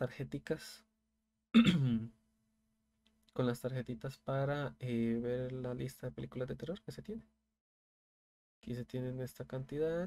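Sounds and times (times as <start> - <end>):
man clearing his throat: 1.5 - 2.1.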